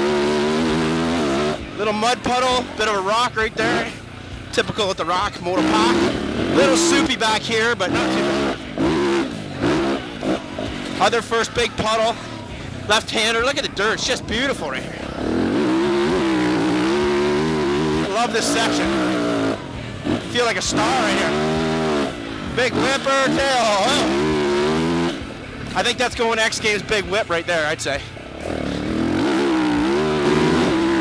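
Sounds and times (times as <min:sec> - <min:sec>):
motorcycle engine at high revs: 0:00.0 - 0:27.1, 0:28.2 - 0:31.0.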